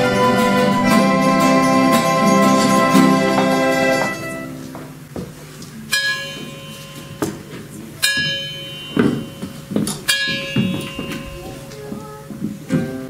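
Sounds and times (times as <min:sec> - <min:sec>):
bell ringing: 0:00.0 - 0:04.6, 0:05.9 - 0:11.7.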